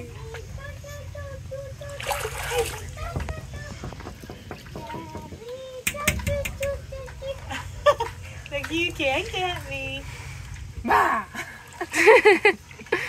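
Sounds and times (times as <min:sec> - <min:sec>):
water splashing: 0:00.0 - 0:05.0, 0:08.2 - 0:13.0
voices: 0:00.0 - 0:10.2
child calling: 0:04.8 - 0:07.7.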